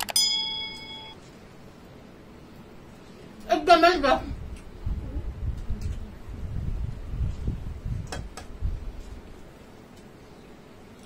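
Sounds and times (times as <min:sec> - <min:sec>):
notification bell ding: 0:00.0 - 0:01.2.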